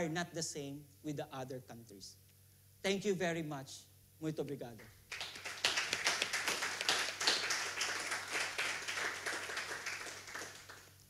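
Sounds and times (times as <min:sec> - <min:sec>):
audience applauding: 0:05.1 - 0:11.0.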